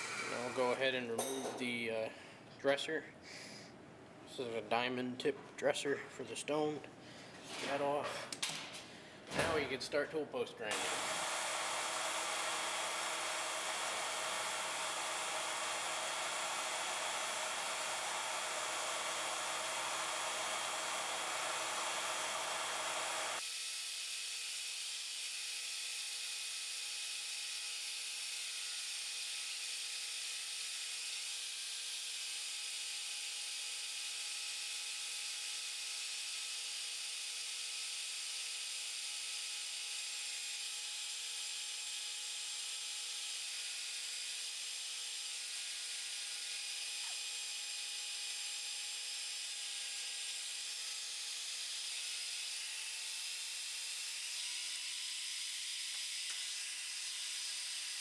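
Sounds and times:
grinder motor running: 0.0s - 1.1s, 10.7s - 23.5s, 24.2s - 58.0s
grinder wheel grinding steel: 0.0s - 1.4s, 10.7s - 23.4s.

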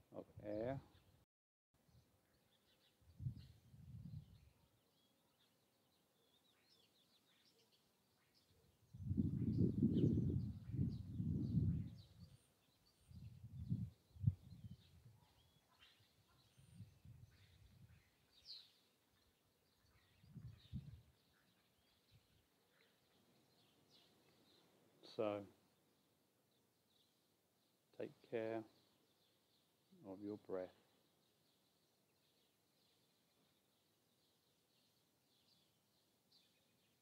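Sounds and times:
small birds chirping: 0.0s - 1.2s, 1.8s - 37.0s
wind rumble on microphone: 3.0s - 4.6s, 8.8s - 15.5s, 16.5s - 18.1s, 19.9s - 21.2s.

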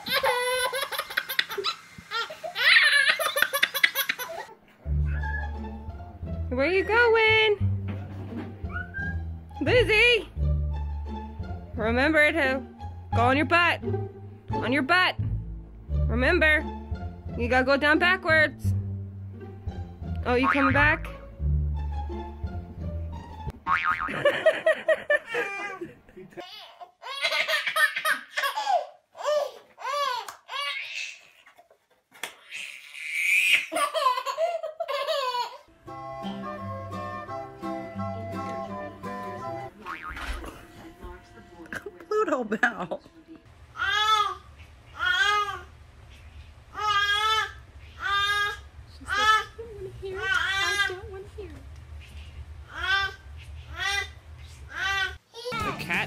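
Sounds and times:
baby laughing: 0.0s - 5.6s, 25.1s - 31.6s, 32.4s - 35.7s.

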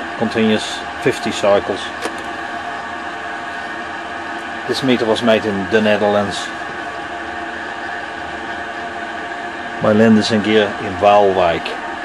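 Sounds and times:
steady hum of constant tones: 0.0s - 12.0s.

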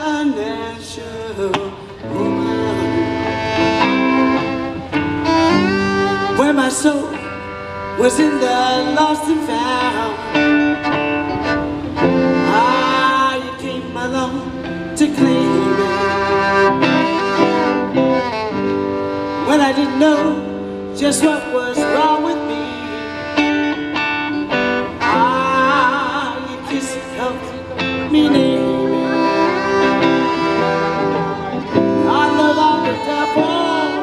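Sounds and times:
guitar accompaniment: 0.0s - 34.0s
violin playing long notes: 2.0s - 34.0s.

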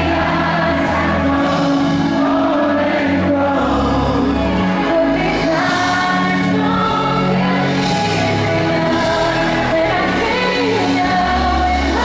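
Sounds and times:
pop music through loudspeakers: 0.0s - 12.0s
woman singing: 0.0s - 12.0s.

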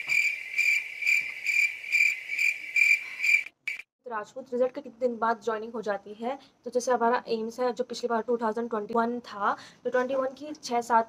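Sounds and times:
cricket chirping: 0.0s - 3.8s.

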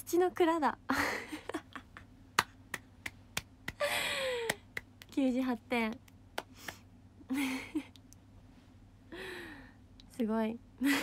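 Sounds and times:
woman laughing: 0.9s - 2.1s, 7.3s - 8.0s.

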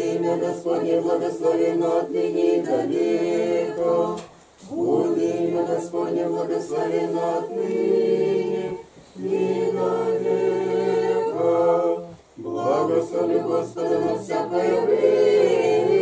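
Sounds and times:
congregation singing a chant: 0.0s - 16.0s.

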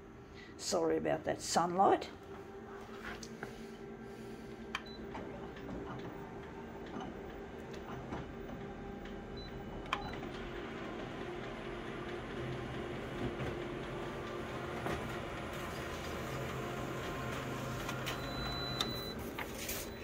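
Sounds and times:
photocopier humming: 0.0s - 20.0s.

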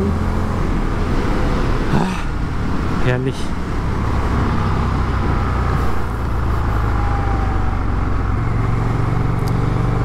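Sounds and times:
motorcycle engine cruising: 0.0s - 10.0s
road noise: 0.0s - 10.0s
wind: 0.0s - 10.0s.

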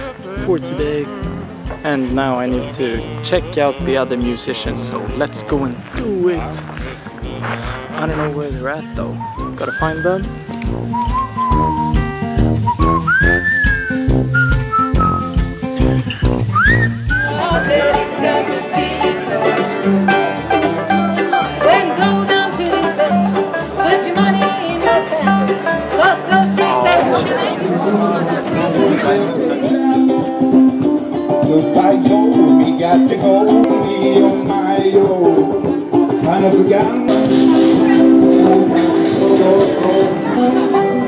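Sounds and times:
bluegrass band playing: 0.0s - 41.0s
whistled tune over beat: 9.0s - 18.0s.

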